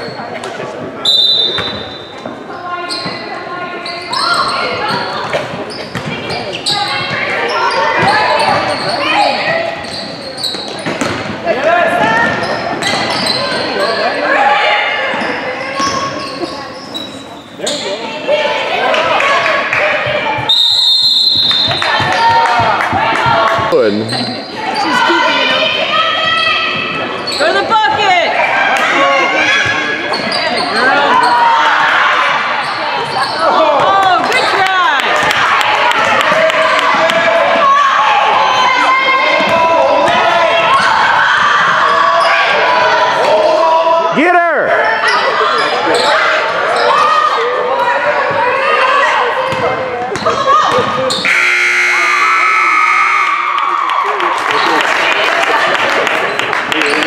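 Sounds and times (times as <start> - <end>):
basketball bouncing on court: 4.7 - 7.4, 10.5 - 11.4, 49.5 - 51.5
players and spectators shouting: 11.4 - 16.9, 17.6 - 55.9
scoreboard buzzer: 51.2 - 53.5.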